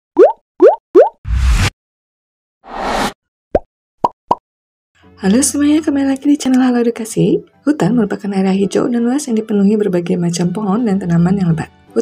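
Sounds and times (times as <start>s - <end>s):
cartoon bloop pops: 0.2s - 1.2s.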